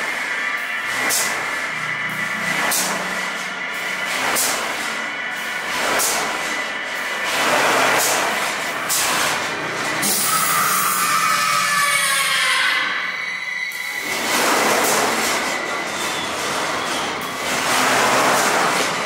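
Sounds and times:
steady shrill drone: 0:00.0 - 0:19.0.

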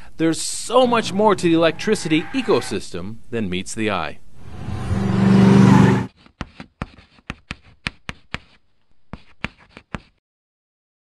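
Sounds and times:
car engine revving: 0:04.4 - 0:06.1.

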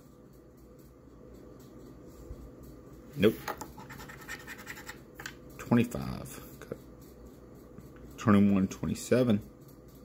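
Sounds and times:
coin scraping scratch card: 0:03.3 - 0:05.3.

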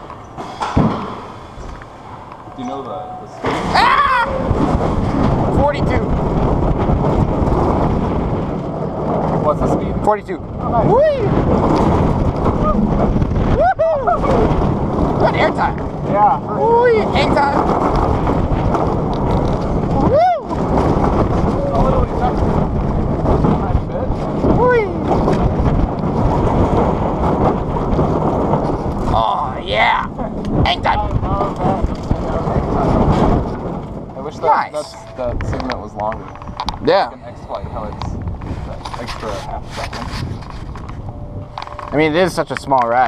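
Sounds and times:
roller coaster wheels rumbling on track: 0:00.0 - 0:43.0
wind roaring over microphone: 0:00.0 - 0:43.0
rider whooping: 0:03.5 - 0:05.1, 0:10.8 - 0:14.9, 0:19.8 - 0:22.2.

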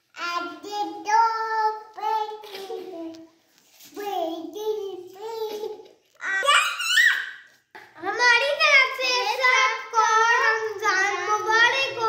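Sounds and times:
girls speaking sing-song: 0:07.8 - 0:12.0.

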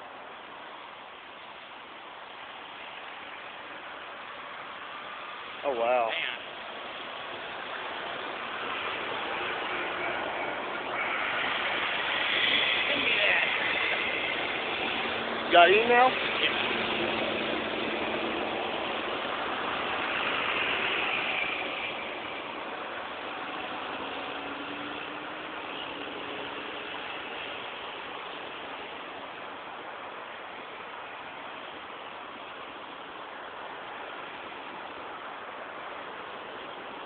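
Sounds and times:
traffic hiss and rumble: 0:00.0 - 0:37.0
vehicle passing by: 0:04.9 - 0:30.8.

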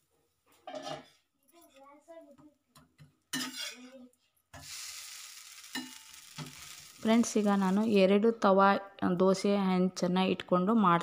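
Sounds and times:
metal spatula scraping griddle: 0:00.6 - 0:01.1, 0:03.3 - 0:04.0, 0:04.6 - 0:07.4
dosa sizzling on griddle: 0:03.3 - 0:03.8, 0:04.6 - 0:08.0.

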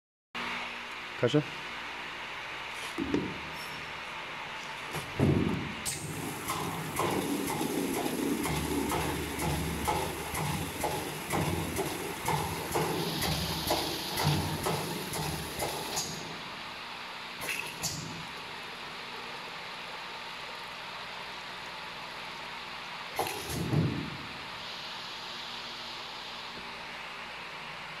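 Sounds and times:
machine knocks and clunks: 0:03.0 - 0:03.5, 0:04.9 - 0:16.2, 0:23.2 - 0:24.3.

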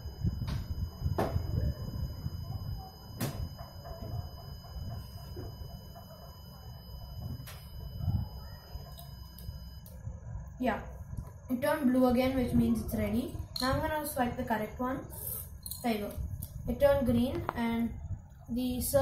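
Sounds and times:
piezo buzzer steady high tone: 0:00.0 - 0:11.8.

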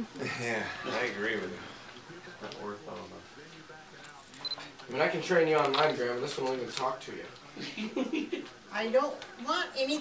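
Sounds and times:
quiet talking: 0:00.0 - 0:10.0.

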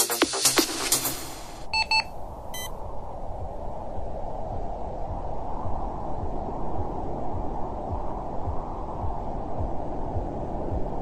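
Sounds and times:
short electronic beep: 0:01.7 - 0:02.7.

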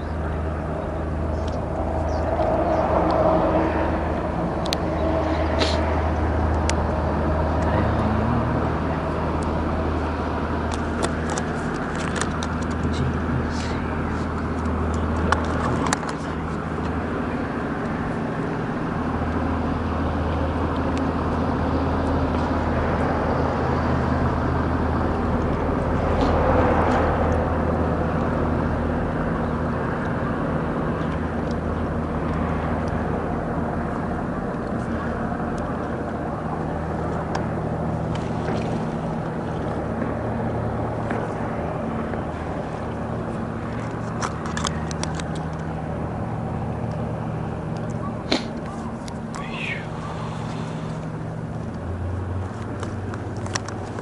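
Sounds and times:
low engine drone: 0:00.0 - 0:54.0.

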